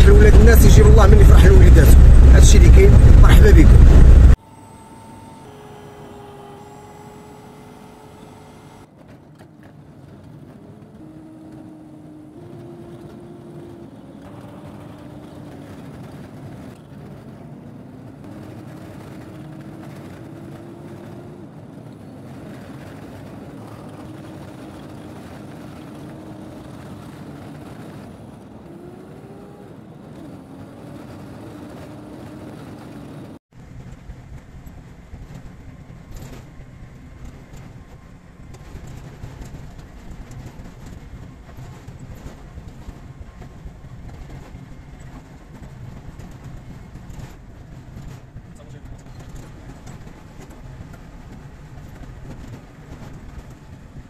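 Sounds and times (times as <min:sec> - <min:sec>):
vehicle engine and road noise: 0:00.0 - 0:54.0.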